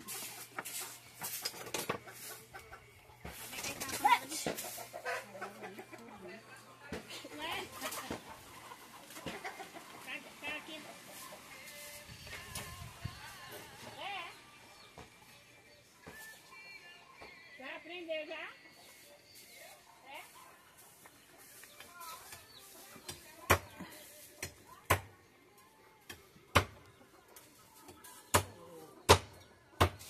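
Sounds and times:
chickens clucking: 0.0 - 16.5, 17.1 - 30.0.

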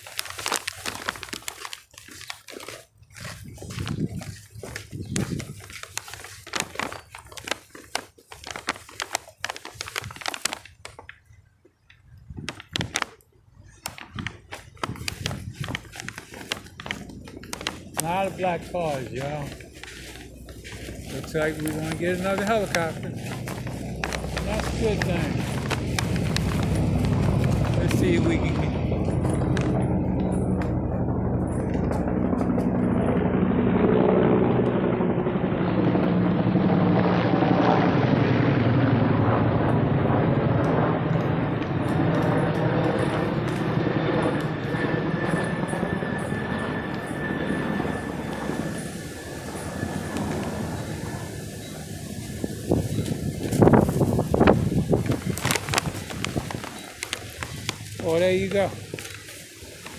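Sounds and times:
helicopter rotor and engine drone: 2.6 - 10.1, 13.8 - 59.9.

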